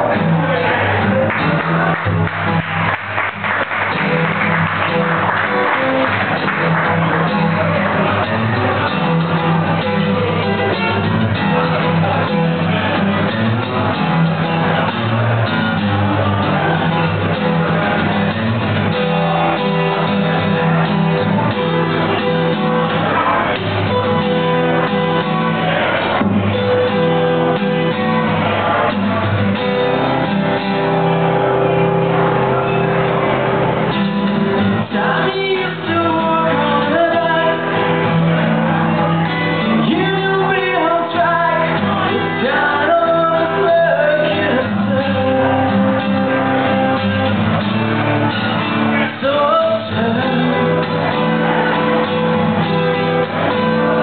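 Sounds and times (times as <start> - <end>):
acoustic guitar strumming blues: 0.0 - 54.0.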